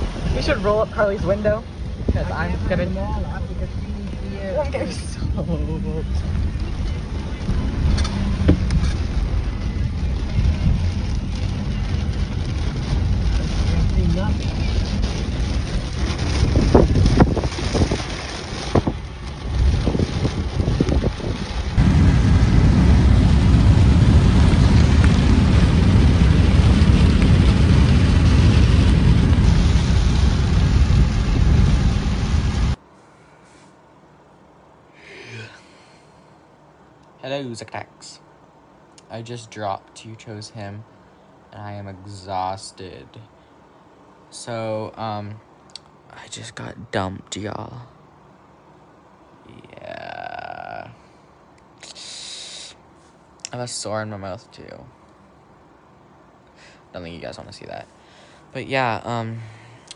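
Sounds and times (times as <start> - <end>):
wind and road noise in car: 0.0 - 32.9.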